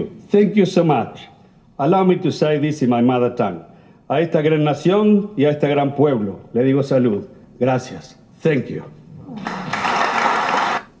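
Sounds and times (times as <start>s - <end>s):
applause: 9.4s - 11.0s.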